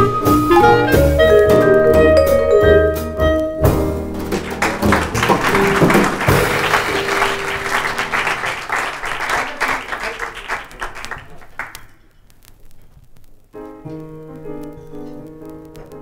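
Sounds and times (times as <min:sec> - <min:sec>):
jazz band final notes: 0:00.0 - 0:08.9
audience applauding: 0:04.2 - 0:12.0.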